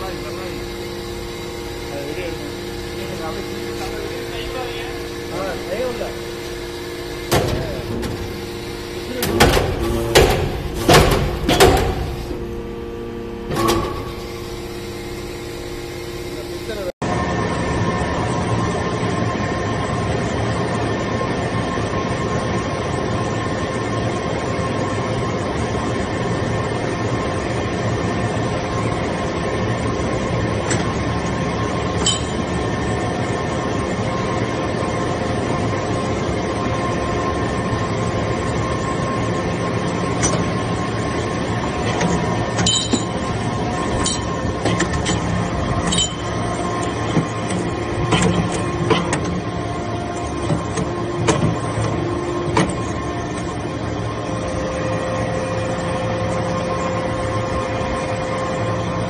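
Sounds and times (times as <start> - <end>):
hydraulic press mechanical drone: 0.0 - 59.0.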